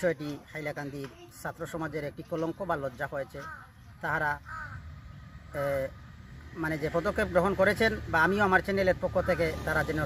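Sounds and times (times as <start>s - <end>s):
man speaking: 0.0s - 10.0s
crow cawing: 3.4s - 5.2s.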